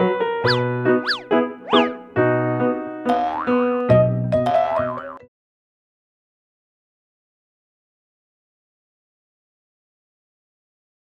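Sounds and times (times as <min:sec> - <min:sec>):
bouncy comedic music: 0:00.4 - 0:05.2
springy cartoon sound: 0:00.5 - 0:02.1.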